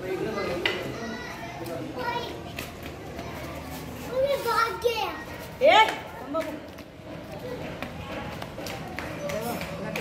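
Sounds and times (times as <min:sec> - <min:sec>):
background chatter: 0:00.0 - 0:10.0
children's voices: 0:00.1 - 0:05.6, 0:07.1 - 0:08.4.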